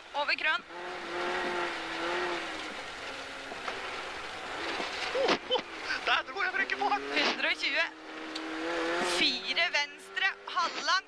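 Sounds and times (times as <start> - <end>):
car engine inside cabin: 0.0 - 11.0
tyre noise on snowy road: 0.0 - 11.0.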